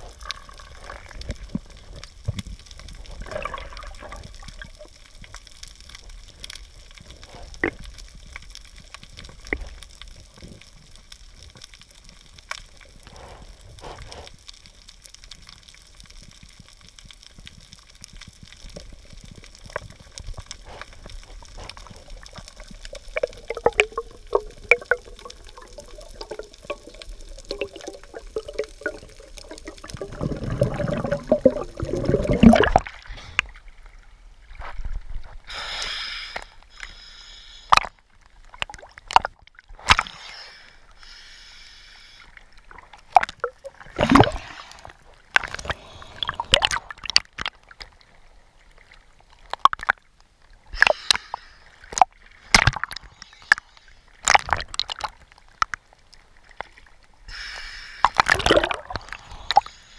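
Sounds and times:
wavering bubbling: 0.0s - 5.2s, 21.4s - 33.1s, 43.2s - 44.5s, 58.2s - 59.6s
low hiss: 0.0s - 38.5s, 40.0s - 46.6s, 56.1s - 59.9s
faint underwater clicks and crackles: 0.0s - 59.9s.

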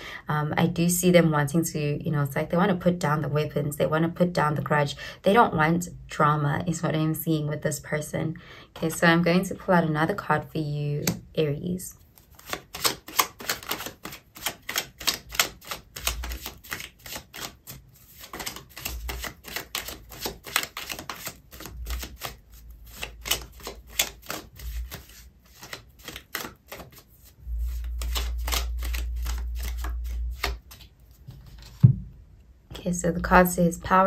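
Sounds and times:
cards being shuffled: 12.0s - 32.0s.

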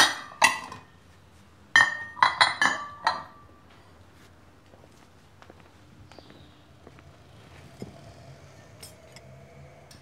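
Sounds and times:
ceramic plates clinking: 0.0s - 0.9s, 1.8s - 3.4s.

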